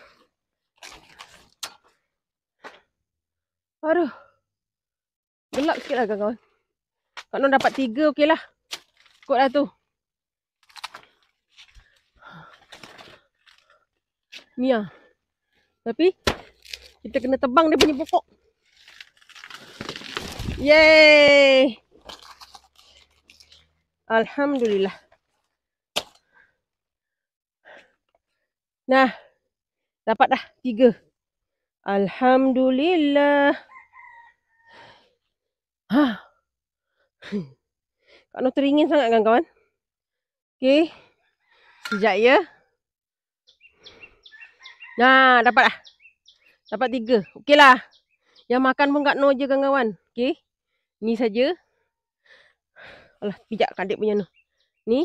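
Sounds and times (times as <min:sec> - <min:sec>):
stalk snapping: 0:10.6 - 0:11.8, 0:16.2 - 0:17.0, 0:18.8 - 0:20.8, 0:22.0 - 0:23.6
leaves and stalks rustling: 0:18.0 - 0:23.6.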